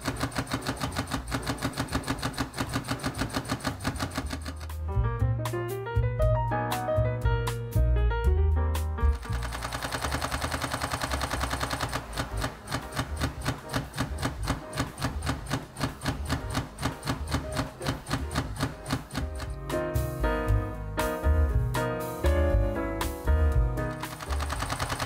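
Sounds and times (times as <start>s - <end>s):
camera shutter burst clicking: 9.2s - 19.6s, 24.0s - 25.0s.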